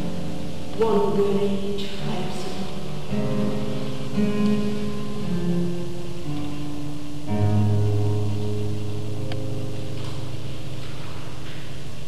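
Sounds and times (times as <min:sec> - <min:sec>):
steady hiss: 0:00.0 - 0:12.0
classical guitar chord ringing: 0:01.8 - 0:11.8.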